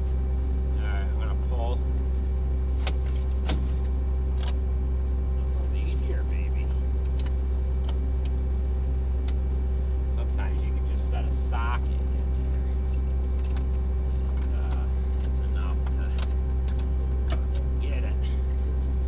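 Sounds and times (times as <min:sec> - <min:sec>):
engine droning: 0:00.0 - 0:19.0.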